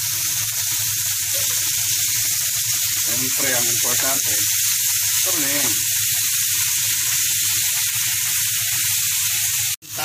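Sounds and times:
meat and onions sizzling in a pan: 0:00.0 - 0:10.0.

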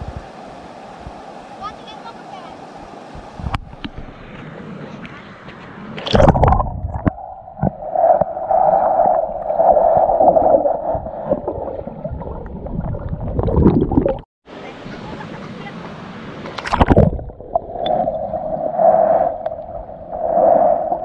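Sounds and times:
water surge: 0:02.6 - 0:14.3, 0:16.3 - 0:21.0
underwater gurgling and rushing: 0:02.7 - 0:14.3, 0:16.2 - 0:21.0.

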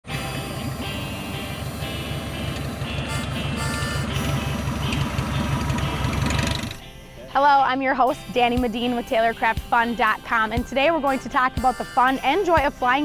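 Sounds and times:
propeller plane engine running: 0:00.1 - 0:06.8
background music with beat: 0:06.8 - 0:13.0.

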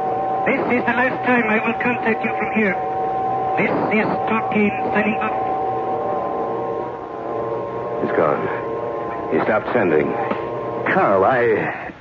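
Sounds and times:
radio hiss: 0:00.0 - 0:05.6, 0:07.5 - 0:12.0
radio carrier-wave hum: 0:00.0 - 0:12.0.

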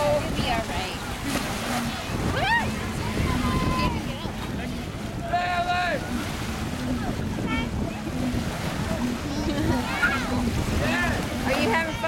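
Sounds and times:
small waves washing on sand: 0:00.0 - 0:12.0
wind buffeting microphone: 0:00.0 - 0:12.0.

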